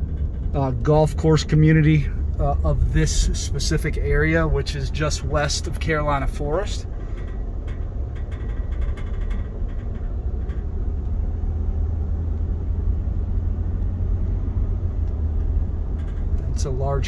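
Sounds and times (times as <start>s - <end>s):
car cabin road and engine rumble: 0.0s - 17.0s.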